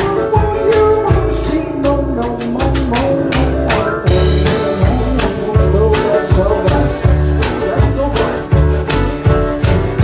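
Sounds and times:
acoustic guitar: 0:00.0 - 0:10.0
banjo: 0:00.0 - 0:10.0
double bass walking notes: 0:00.0 - 0:10.0.

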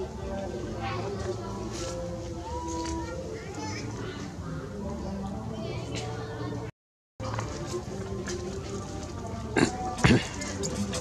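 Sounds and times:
macaque grunt: 0:09.6 - 0:10.4.

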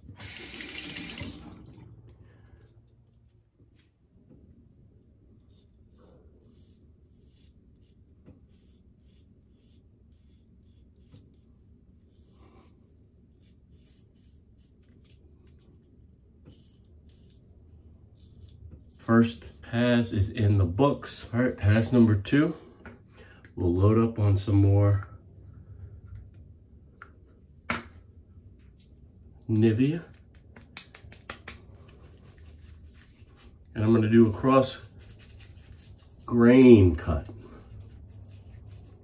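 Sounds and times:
water tap running: 0:00.0 - 0:01.9
razor scraping stubble: 0:13.3 - 0:15.4, 0:16.4 - 0:19.5.

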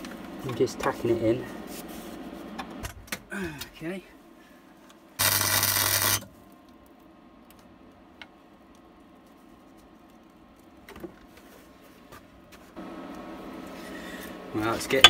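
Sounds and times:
welder arc burst: 0:05.2 - 0:06.2
low welder hum: 0:05.2 - 0:06.5.

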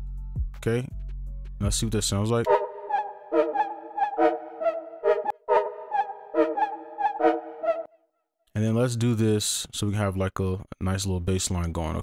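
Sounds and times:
synthesizer chord loop: 0:02.5 - 0:07.9.

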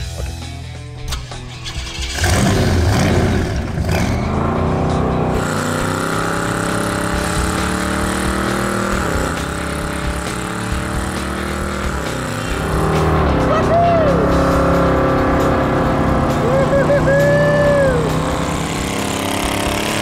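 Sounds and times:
car engine revving hard: 0:01.7 - 0:20.0.

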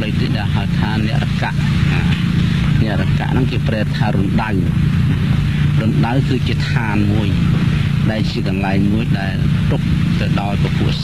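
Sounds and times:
man preaching: 0:00.0 - 0:04.8, 0:05.6 - 0:11.0
steady low hum: 0:00.0 - 0:11.0.

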